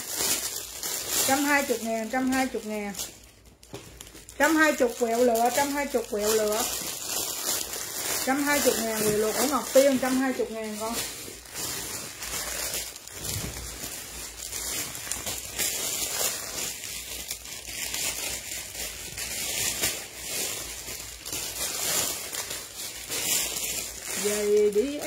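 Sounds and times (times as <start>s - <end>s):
plastic bag crinkling: 0.0s - 25.0s
cloth shuffling: 4.4s - 18.8s.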